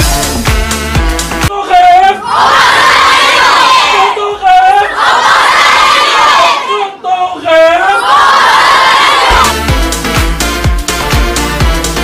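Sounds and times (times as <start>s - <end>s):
children shouting together: 2.2s - 4.2s, 4.8s - 7.0s, 7.8s - 9.5s.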